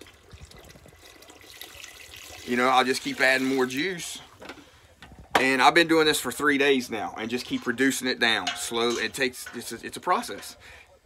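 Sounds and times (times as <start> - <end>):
liquid trickling and splashing: 0.0 - 4.8.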